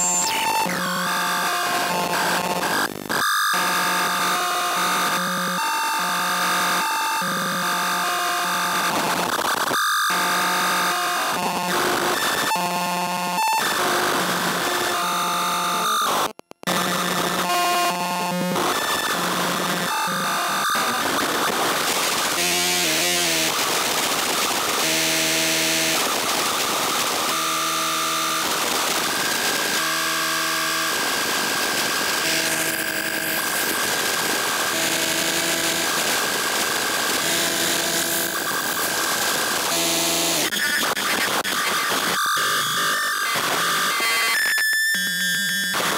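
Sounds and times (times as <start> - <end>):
glitchy synth buzzing tones: 0.0 - 45.9.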